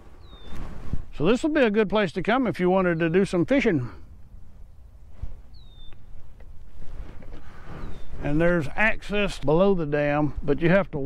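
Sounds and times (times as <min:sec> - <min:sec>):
low outdoor rumble: 0:00.0 - 0:11.0
bird whistled call: 0:00.2 - 0:00.6, 0:05.5 - 0:06.1, 0:07.7 - 0:08.2.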